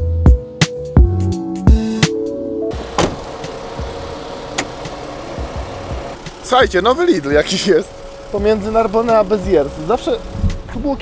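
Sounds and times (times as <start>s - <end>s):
vehicle engine idling: 2.8s - 11.0s.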